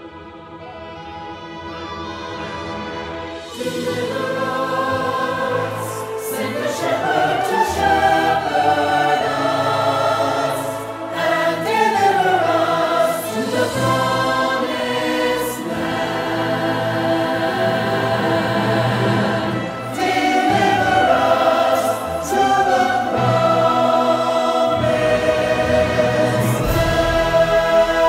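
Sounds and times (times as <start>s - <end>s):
choir singing held chords: 0.0s - 28.0s.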